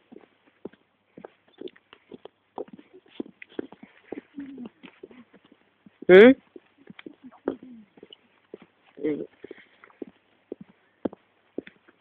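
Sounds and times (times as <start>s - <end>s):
footsteps on paved path: 0.0s - 12.0s.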